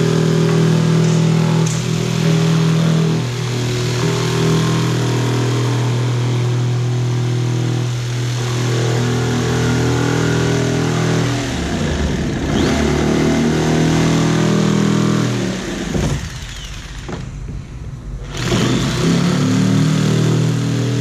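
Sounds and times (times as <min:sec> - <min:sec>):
jigsaw cutting plastic: 0:10.8 - 0:17.2, 0:18.3 - 0:19.8.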